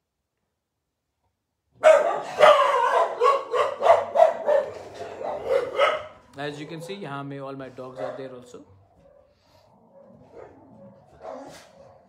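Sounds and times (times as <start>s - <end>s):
dogs barking loudly: 1.8s - 12.0s.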